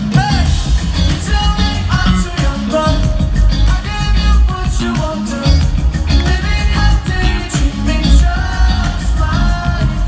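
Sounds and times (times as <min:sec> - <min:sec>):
heavy bass and drum beat: 0:00.0 - 0:10.0
live pop-rock band playing: 0:00.0 - 0:10.0
male lead vocal: 0:00.0 - 0:10.0.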